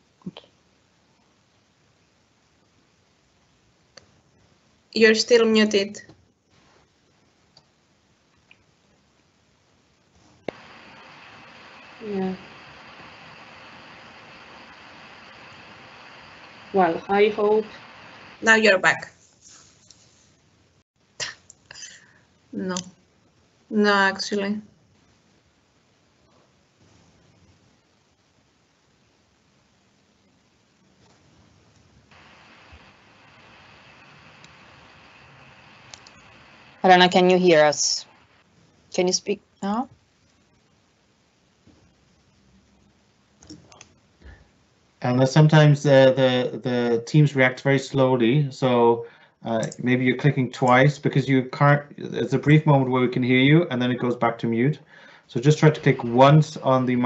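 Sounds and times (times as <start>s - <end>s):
steady hiss: 0.0s - 57.0s
faint clicks: 10.4s - 16.8s, 31.0s - 36.8s, 43.4s - 44.4s
faint ticks: 31.0s - 36.8s.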